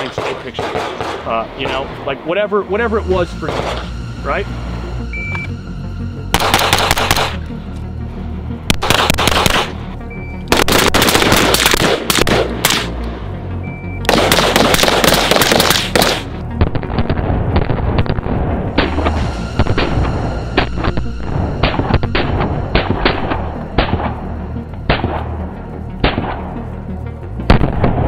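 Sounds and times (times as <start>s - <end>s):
rifle gunfire bursts: 0.0s - 1.2s, 6.4s - 7.4s, 8.7s - 9.7s, 10.5s - 12.9s, 14.1s - 16.3s
background music with bass: 0.0s - 28.0s
shot timer beeps: 5.0s - 5.6s.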